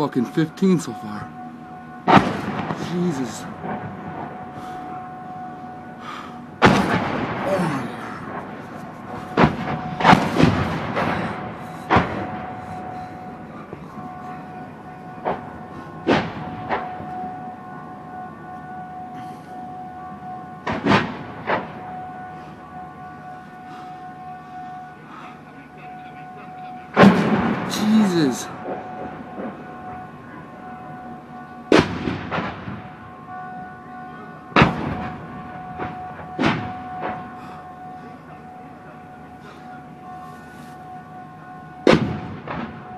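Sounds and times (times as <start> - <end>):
faint steady tone: 0.0 - 42.9
mortar explosions with echo: 2.0 - 5.0, 6.6 - 14.4, 15.1 - 17.3, 20.6 - 21.9, 27.0 - 30.0, 31.7 - 32.9, 34.6 - 37.3, 41.9 - 42.9
mortar rounds exploding: 6.6 - 7.7.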